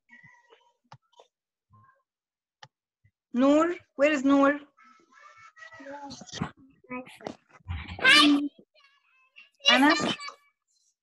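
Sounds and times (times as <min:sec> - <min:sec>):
garbled voices over video call: 0:04.6 - 0:10.8.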